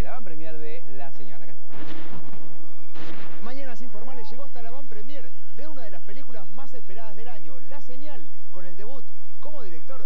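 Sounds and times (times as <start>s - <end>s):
loud noise bursts: 1.6s - 6.8s
person speaking: 3.4s - 9.8s.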